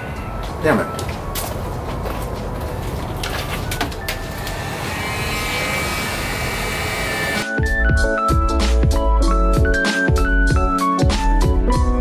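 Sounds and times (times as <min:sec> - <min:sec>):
piano and drum beat music: 0:07.4 - 0:12.0.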